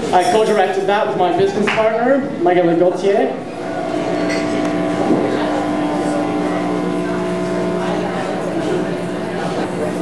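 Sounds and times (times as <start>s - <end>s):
drone of held tones: 3.5s - 9.9s.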